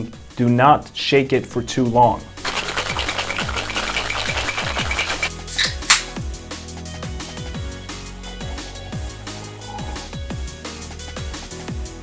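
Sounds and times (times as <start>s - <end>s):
ice rattling in cocktail shaker: 2.4s - 5.7s
electronic music with thumping beat: 2.4s - 6.4s.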